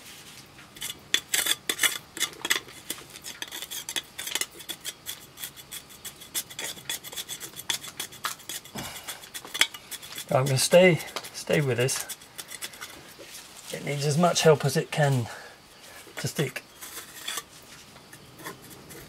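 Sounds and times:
trowel scraping mortar on stone: 0.6s - 15.3s, 15.9s - 19.0s.

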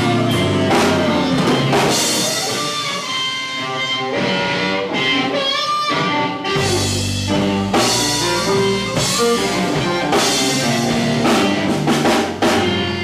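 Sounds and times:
harmonica: 0.0s - 12.0s
electric guitar: 0.0s - 13.0s
drum hits: 6.6s - 12.9s.

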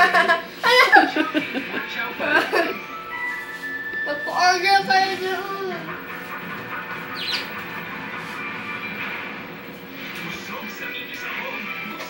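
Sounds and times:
low background music: 0.0s - 12.0s
budgerigar chirp: 6.7s - 7.8s.

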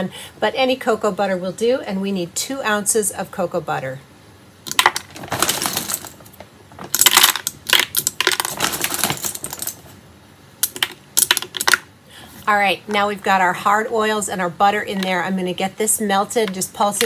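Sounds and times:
wafers clattering into plastic jug: 4.7s - 9.8s.

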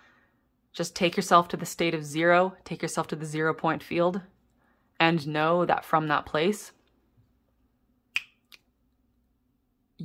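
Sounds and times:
finger snap: 8.1s - 8.7s.

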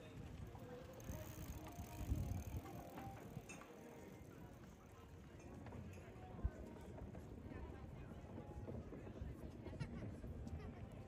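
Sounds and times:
electric bicycle rolling over cobblestones: 0.0s - 5.9s.

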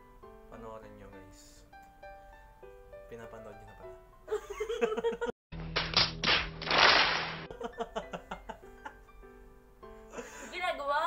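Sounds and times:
large audience applauding: 5.8s - 7.5s.

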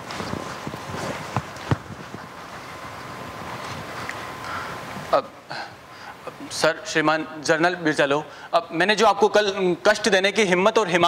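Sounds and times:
footsteps on carpeted stage: 0.0s - 4.3s
room tone hiss: 0.0s - 11.0s.

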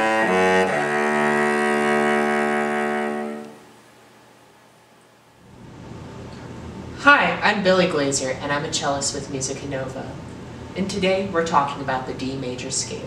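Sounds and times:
bowed cello notes: 0.0s - 3.8s
faint room noise: 0.0s - 13.0s.

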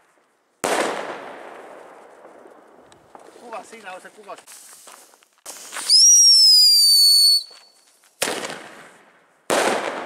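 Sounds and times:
firework bangs: 0.0s - 3.8s, 5.4s - 7.5s, 8.2s - 10.0s
firework whistle: 5.5s - 7.8s.

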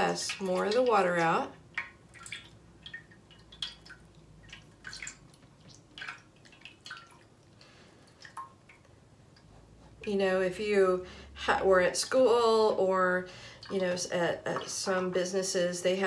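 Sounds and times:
water dripping into tray: 0.0s - 10.5s, 13.4s - 15.7s.

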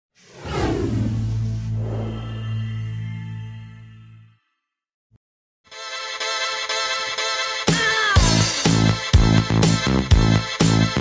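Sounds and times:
downward whoosh effect: 0.2s - 2.9s.

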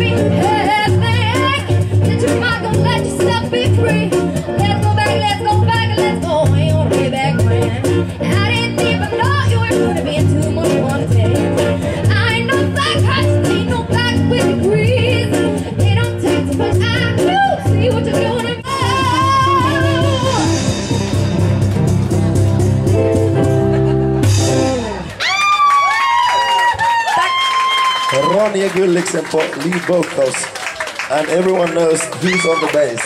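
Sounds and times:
bass line: 0.0s - 25.4s
guitar: 0.0s - 25.9s
busy percussion: 0.0s - 33.0s.

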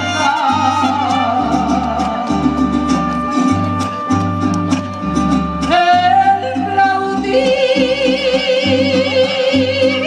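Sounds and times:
mariachi band playing: 0.0s - 10.0s.

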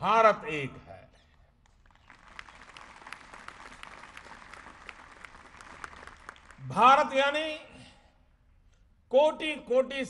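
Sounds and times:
audience applauding: 1.8s - 6.6s.

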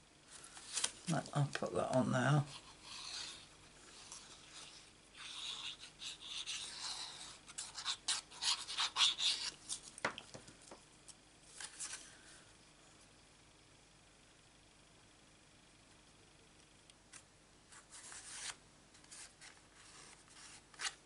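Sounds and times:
glue nozzle scratching on card: 4.1s - 9.6s.

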